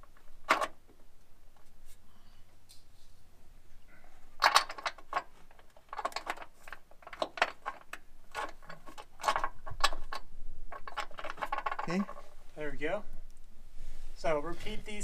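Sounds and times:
metallic clicks and rattles: 0.0 - 0.9, 4.4 - 12.3.

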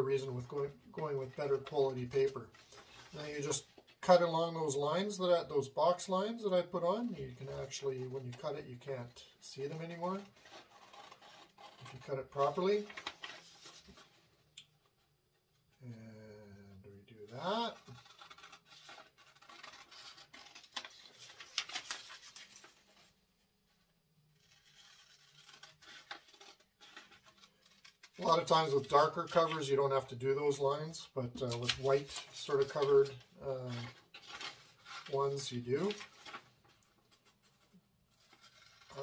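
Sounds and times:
paper rustling: 0.2 - 4.2, 6.9 - 14.5, 17.3 - 23.2, 24.4 - 30.7, 31.3 - 39.0
scissors cutting paper: 17.7 - 21.9, 24.4 - 28.3.

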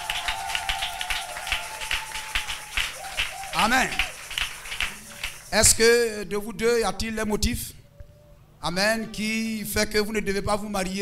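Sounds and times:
congregation clapping: 0.0 - 5.8.

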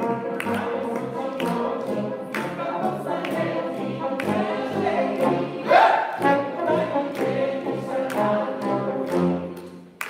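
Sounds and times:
tuba low notes: 0.0 - 9.8
brass quintet playing: 4.7 - 9.4.

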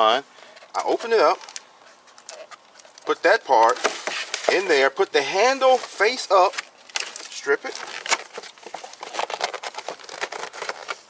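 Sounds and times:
paperboard envelope rustling: 0.8 - 11.0.

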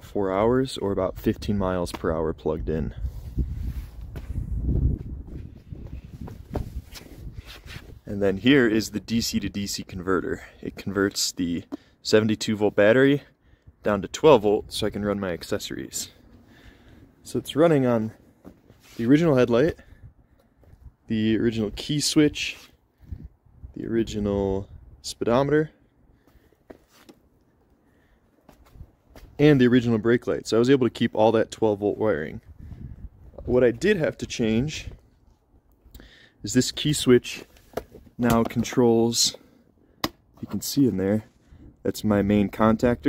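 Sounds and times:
microphone handling noise: 3.0 - 8.0
footsteps: 3.2 - 8.0.

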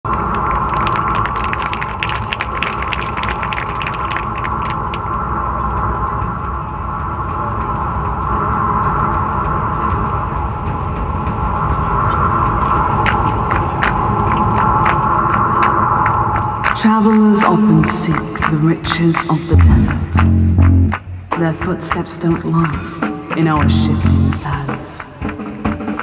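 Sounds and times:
low rumble: 0.0 - 25.3
electronic drone over loudspeakers: 0.0 - 26.0.

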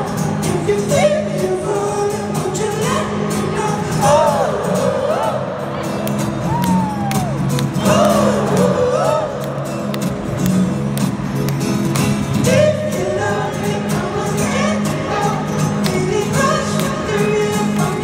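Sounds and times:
crowd noise: 0.0 - 18.0.

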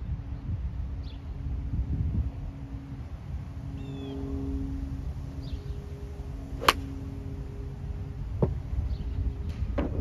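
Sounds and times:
faint steady hum: 0.0 - 10.0
low outdoor rumble: 0.0 - 10.0
golf club striking ball: 6.6 - 7.0.

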